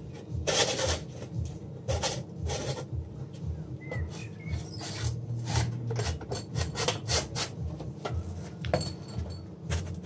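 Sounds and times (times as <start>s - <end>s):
metal silencer scraping on steel bench: 0.4s - 1.3s, 1.9s - 2.9s.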